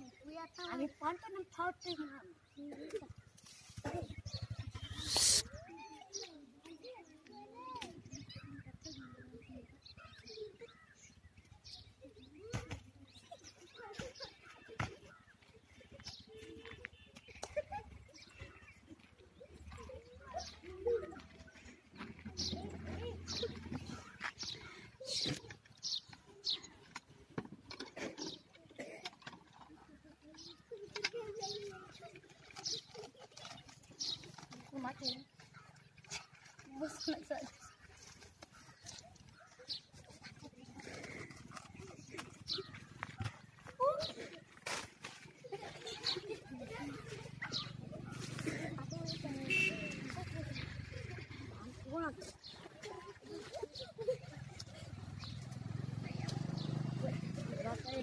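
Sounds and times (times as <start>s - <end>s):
children making monkey-like calls: 2.6s - 11.0s, 35.4s - 58.0s.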